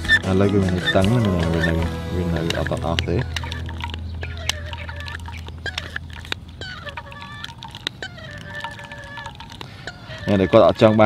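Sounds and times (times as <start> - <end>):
thin held tones: 0.0 - 11.0.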